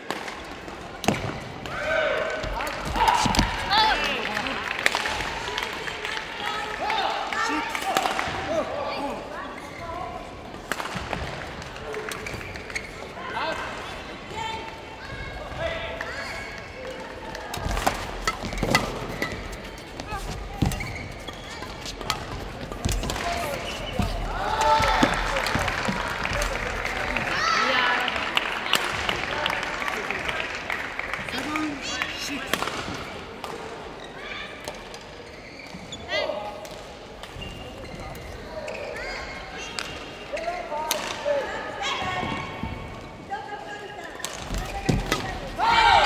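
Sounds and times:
badminton racket strikes: 17.6 - 24.1.

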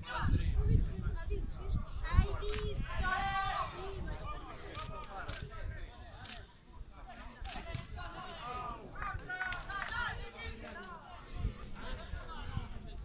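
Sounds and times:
wind rumble on microphone: 0.0 - 6.0, 11.2 - 13.0.

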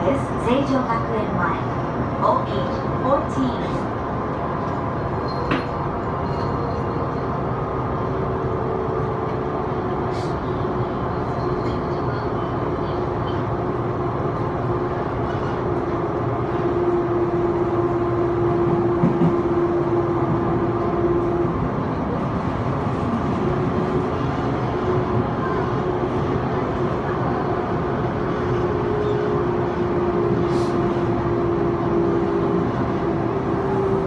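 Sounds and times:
train wheel and track noise: 0.0 - 34.0.

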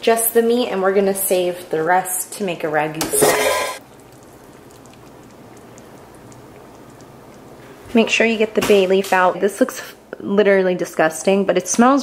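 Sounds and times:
woman speaking: 0.0 - 3.5, 7.9 - 12.0
kitchen room hiss: 0.0 - 12.0.

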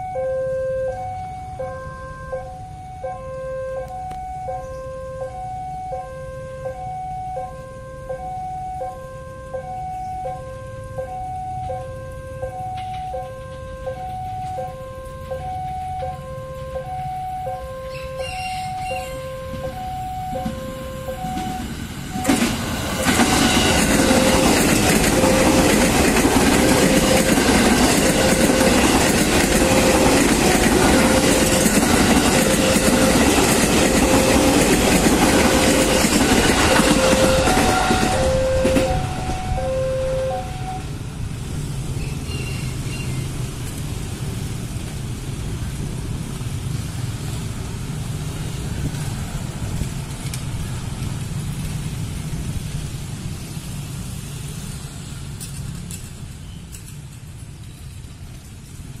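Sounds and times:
level crossing warning bell: 0.0 - 41.0
motorcycle engines humming: 0.0 - 58.9
electric train passing: 0.0 - 59.0
wheel and rail noise: 0.0 - 59.0.

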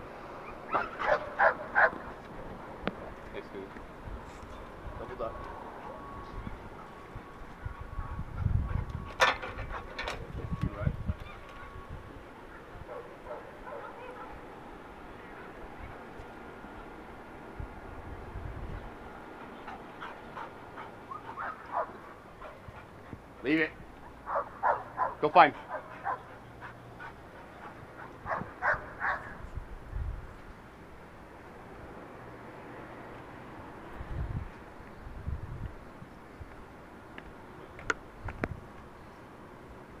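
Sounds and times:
dog barking: 0.7 - 2.0, 12.9 - 14.4, 21.2 - 22.0, 24.2 - 26.3, 28.3 - 29.4.

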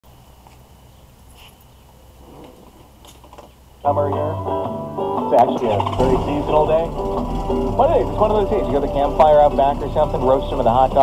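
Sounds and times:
radio announcer talking: 5.2 - 11.0.

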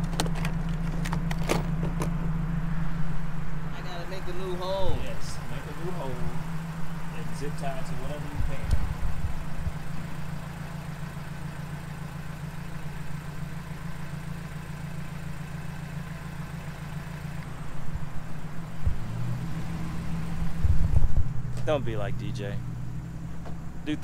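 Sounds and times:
low bumps: 0.0 - 10.1, 17.4 - 24.0
car engine idling: 0.0 - 24.0.

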